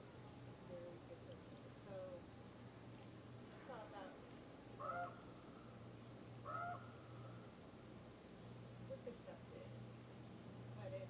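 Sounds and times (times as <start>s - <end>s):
steady low hum: 0.0s - 11.0s
orca calls underwater: 4.8s - 5.2s, 6.4s - 6.9s.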